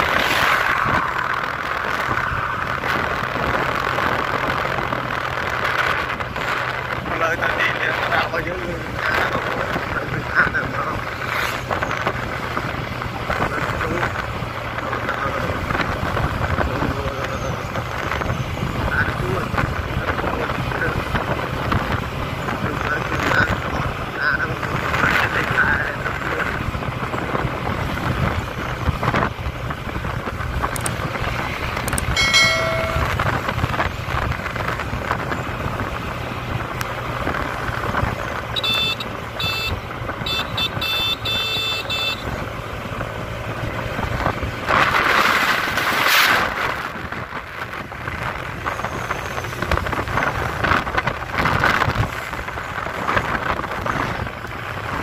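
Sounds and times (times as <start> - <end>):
wind rushing over microphone: 0.0 - 40.3, 42.2 - 55.0
horn toot: 38.6 - 42.3.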